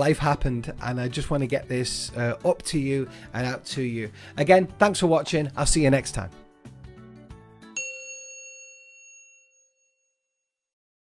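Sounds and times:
soft background music: 0.0s - 8.0s
bright bell-like chime: 7.6s - 10.4s.

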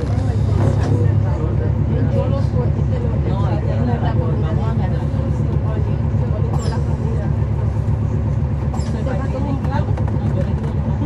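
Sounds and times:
bus diesel engine rumbling: 0.0s - 11.0s
faint voices: 0.0s - 11.0s.

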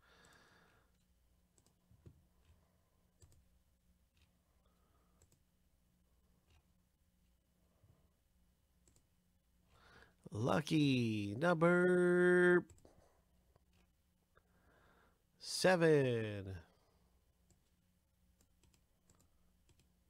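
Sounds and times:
faint low hum: 0.0s - 20.0s
computer mouse clicks: 0.2s - 3.5s, 4.1s - 4.4s, 5.1s - 5.5s, 8.8s - 9.1s, 18.4s - 19.9s.

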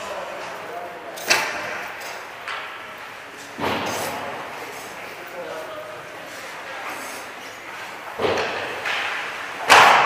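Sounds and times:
ice rink hubbub: 0.0s - 10.0s
hockey puck strike crack: 8.2s - 10.0s.

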